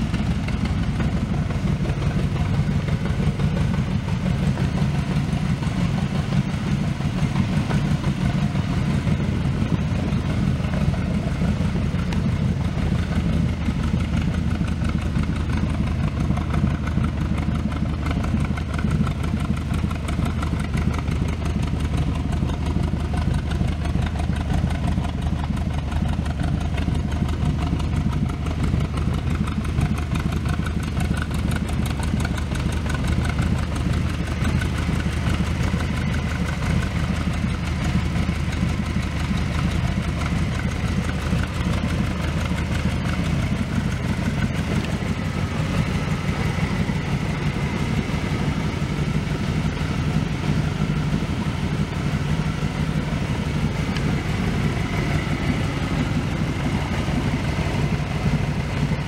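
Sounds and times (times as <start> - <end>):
car engine idling: 0.0 - 59.0.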